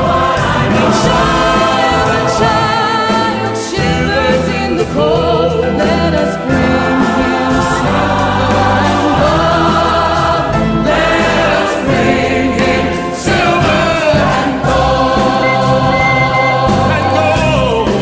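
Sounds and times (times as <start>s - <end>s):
steady bass line: 0.0s - 5.6s, 14.8s - 17.9s
choir singing: 0.0s - 18.0s
instrumental accompaniment: 0.0s - 18.0s.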